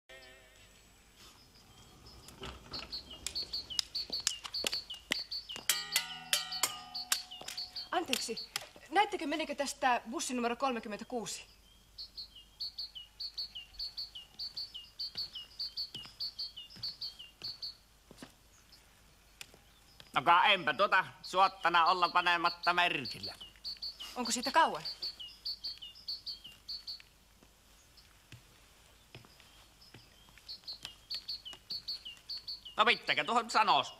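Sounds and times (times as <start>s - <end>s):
small bird chirping: 0.1s - 33.9s.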